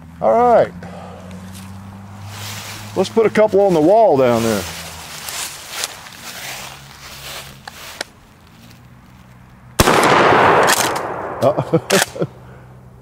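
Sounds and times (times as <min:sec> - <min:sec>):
shotgun blast with echo: 0:09.8 - 0:11.6.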